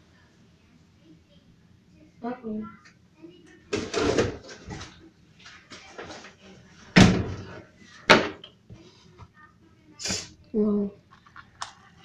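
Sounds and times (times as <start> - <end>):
soft handling and rustling: 4.4 - 9.6
fridge door shutting: 7.0 - 7.5.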